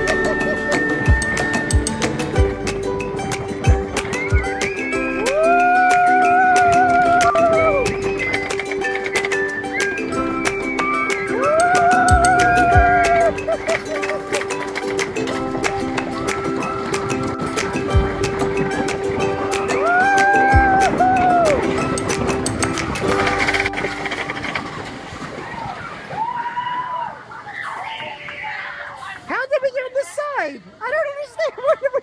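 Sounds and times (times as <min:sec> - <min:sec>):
background music with steady beat: 0:00.0 - 0:24.2.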